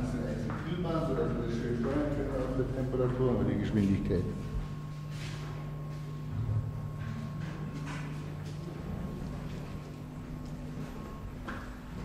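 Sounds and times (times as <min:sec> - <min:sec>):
low machinery hum: 0:00.0 - 0:12.0
faint footsteps and knocks: 0:03.8 - 0:12.0.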